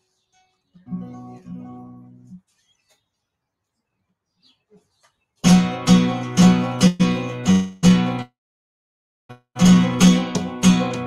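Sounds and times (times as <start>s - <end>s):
flamenco guitar strummed chords: 5.4s - 8.3s, 9.3s - 11.0s.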